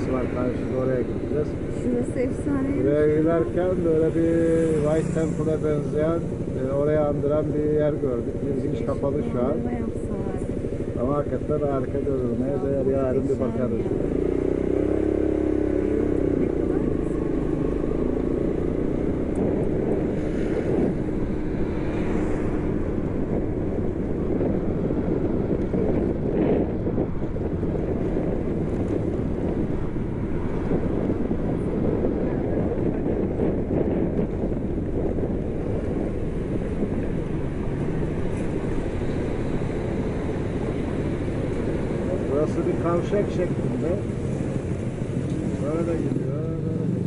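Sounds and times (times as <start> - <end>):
wind rumble on microphone: 0.0 - 47.0.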